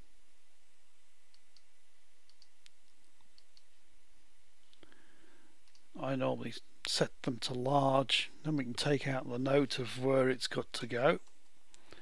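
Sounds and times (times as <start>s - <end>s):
computer mouse clicks: 2.3s - 3.8s, 5.6s - 5.9s.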